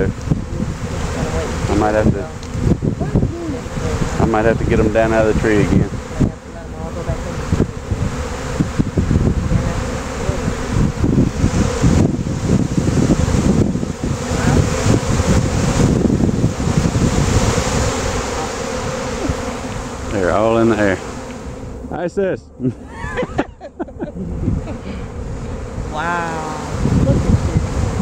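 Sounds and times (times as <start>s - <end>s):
bees buzzing: 0.0s - 28.0s
wind rumbling on microphone: 0.0s - 28.0s.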